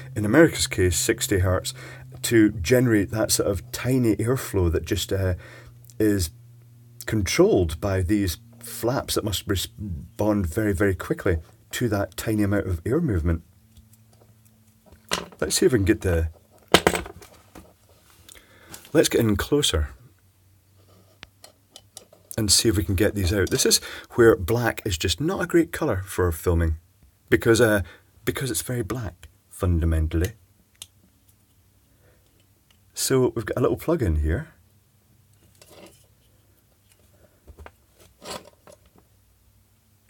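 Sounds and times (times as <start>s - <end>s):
low steady hum: 0.0s - 40.0s
plastic parts scraping and clicking: 35.4s - 39.1s.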